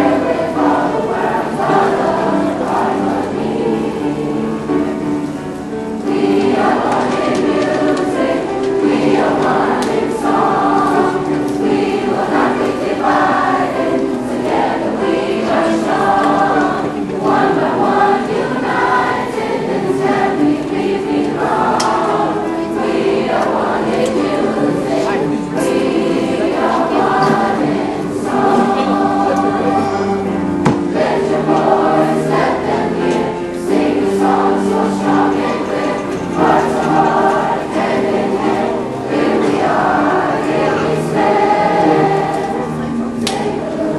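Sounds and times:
children's chorus singing: 0.0 - 43.9.

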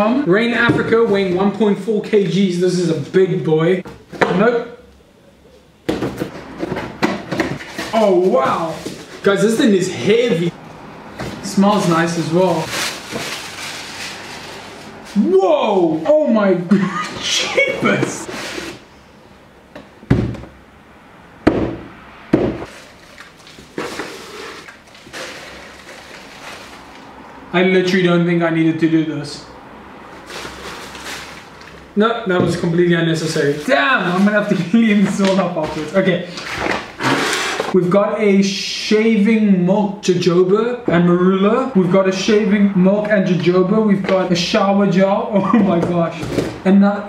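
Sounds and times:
paper packing rustling: 6.3 - 10.5, 11.2 - 16.0, 22.6 - 27.1, 30.2 - 37.8.

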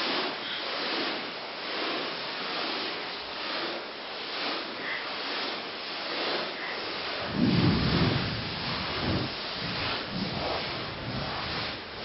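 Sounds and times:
grass rustling against camera: 0.0 - 12.0.

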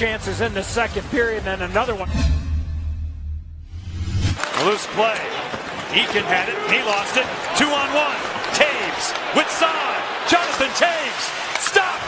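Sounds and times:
arena crowd noise: 4.4 - 12.0
excited commentator talking: 5.9 - 12.0.

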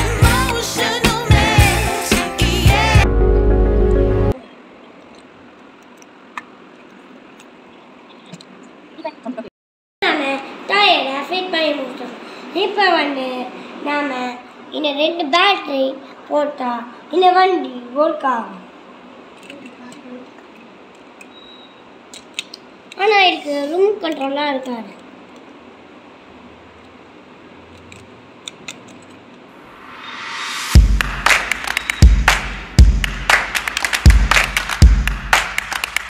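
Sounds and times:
plastic and metal toy parts clicking: 22.1 - 23.0, 24.1 - 25.5, 27.7 - 29.2
plastic and metal parts clicking: 27.7 - 29.2.

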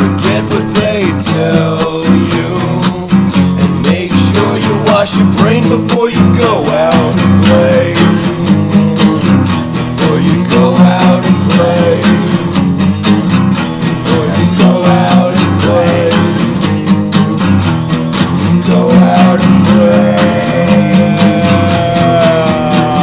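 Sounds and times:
acoustic guitar strumming: 0.0 - 23.0.

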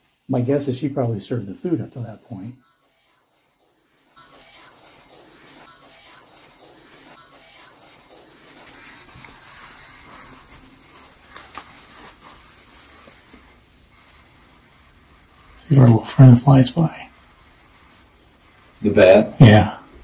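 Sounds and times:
radio scanning static: 0.0 - 20.0.

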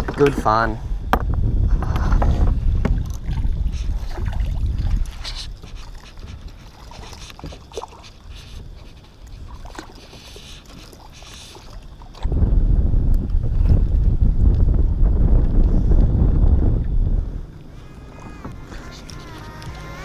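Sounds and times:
wind rumble on microphone: 0.0 - 20.0.

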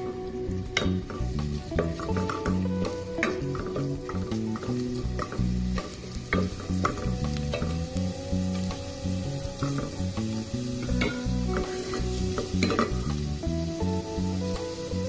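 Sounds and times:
garlic sizzling in hot oil: 0.0 - 15.0
music with stepping bass line: 0.0 - 15.0
spatula scraping and tapping pot: 0.8 - 7.7.

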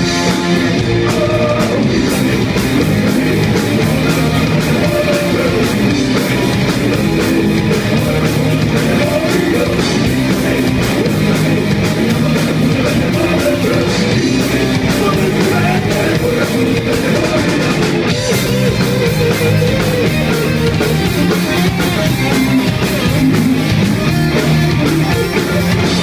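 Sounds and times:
bass guitar: 0.0 - 26.0
drum kit: 0.0 - 26.0
electric guitar: 0.0 - 26.0.

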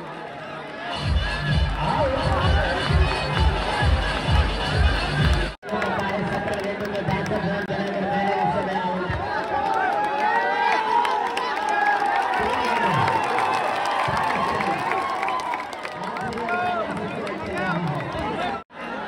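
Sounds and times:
crowd shouting and cheering: 0.0 - 19.0
loud music with heavy beat: 1.0 - 5.6.

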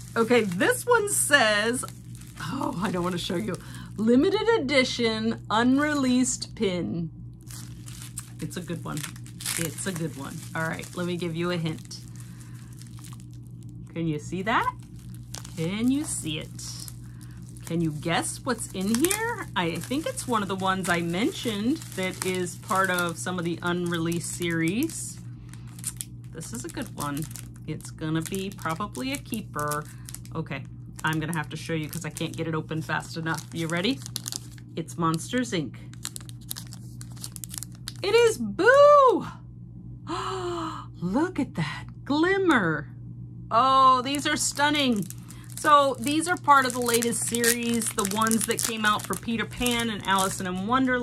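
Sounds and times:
bubble-wrap pouch crinkling: 0.0 - 4.0, 7.4 - 35.2, 35.8 - 38.2, 44.1 - 51.0
faint crackles: 7.4 - 34.7, 44.1 - 50.7.

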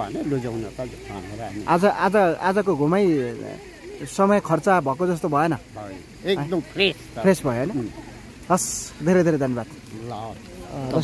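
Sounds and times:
man talking: 0.0 - 7.9, 8.5 - 11.0.

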